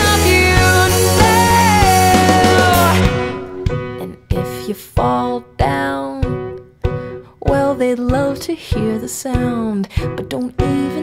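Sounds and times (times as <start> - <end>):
guitar chords ringing: 0.0 - 7.1.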